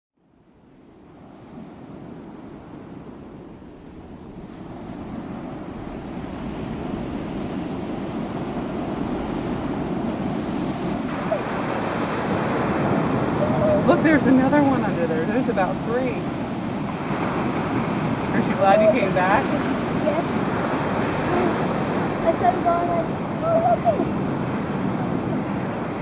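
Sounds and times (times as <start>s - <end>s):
wind on microphone: 0.4s - 26.0s
ocean surf washing on beach: 0.5s - 26.0s.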